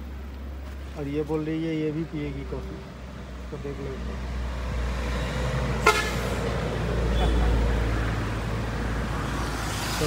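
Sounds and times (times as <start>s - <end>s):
road traffic rumble: 0.0s - 10.0s
vehicle horn toot: 5.8s - 6.3s.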